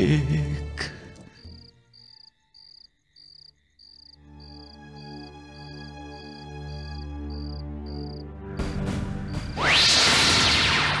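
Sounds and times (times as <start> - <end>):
soft background music: 0.0 - 2.8, 4.2 - 9.6
cricket chirping: 0.9 - 9.6.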